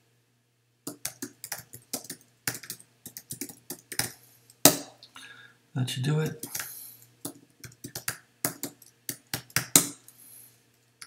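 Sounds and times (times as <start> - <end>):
computer keyboard keys clicking: 0.9 - 4.2, 7.3 - 9.9.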